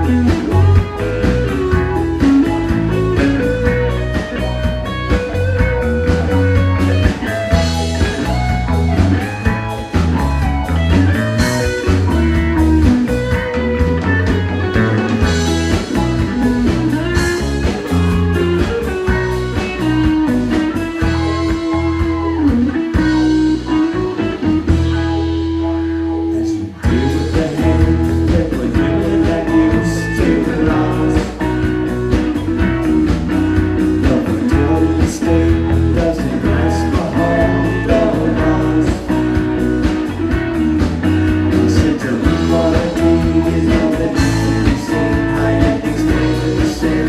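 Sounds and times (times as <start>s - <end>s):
rock band playing instrumental: 0.0s - 47.0s.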